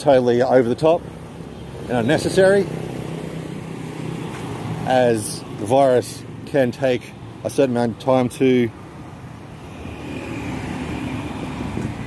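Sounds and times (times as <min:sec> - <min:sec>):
road traffic engine hum: 0:00.0 - 0:12.0.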